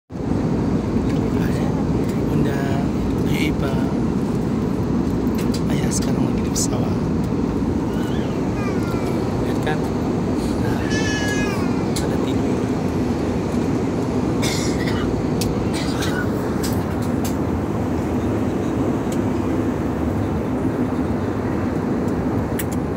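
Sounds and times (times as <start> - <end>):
airliner cabin rumble: 0.2 - 22.9.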